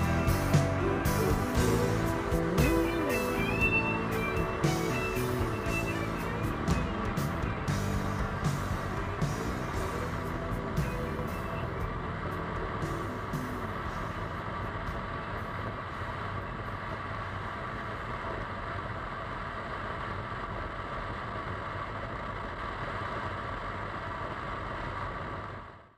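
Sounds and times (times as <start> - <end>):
music: 0.0 - 15.2
motorcycle engine running: 0.0 - 21.1
wind and road noise: 0.0 - 25.9.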